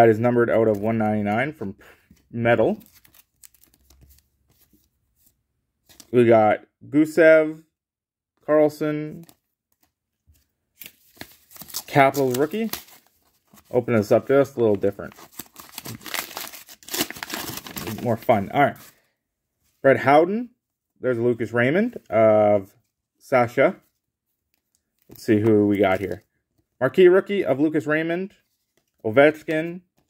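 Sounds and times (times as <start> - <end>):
paper wrapping crinkling and tearing: 2.7 - 4.7, 10.8 - 18.9.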